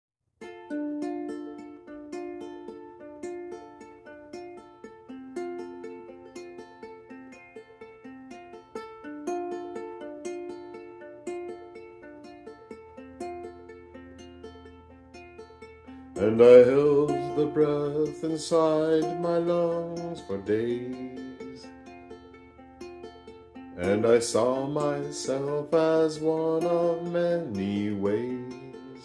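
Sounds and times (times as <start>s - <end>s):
ukulele picking notes: 0.4s - 29.0s.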